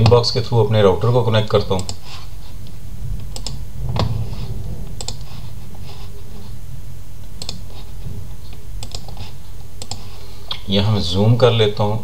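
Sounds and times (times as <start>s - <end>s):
steady low hum: 0.0s - 12.0s
computer mouse clicks: 8.8s - 9.2s, 9.8s - 10.1s.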